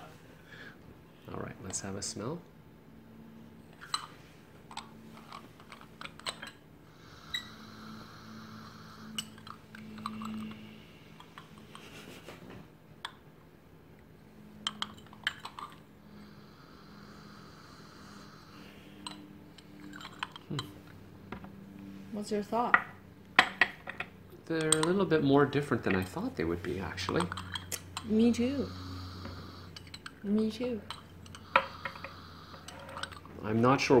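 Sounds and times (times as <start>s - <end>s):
porcelain tea ware clinking: 14.6s - 15.8s, 23.4s - 25.0s, 30.8s - 33.3s.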